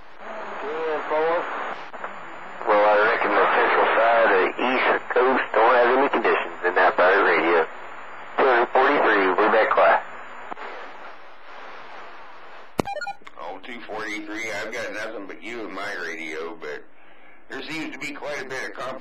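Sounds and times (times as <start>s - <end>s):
radio static hiss: 0.0s - 19.0s
tinny voice over radio: 0.2s - 7.7s, 8.4s - 10.9s.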